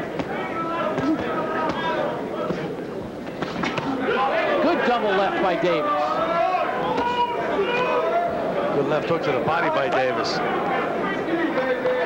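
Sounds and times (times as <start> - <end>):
people shouting: 0.0 - 2.7, 3.7 - 8.6
crowd noise: 0.0 - 12.0.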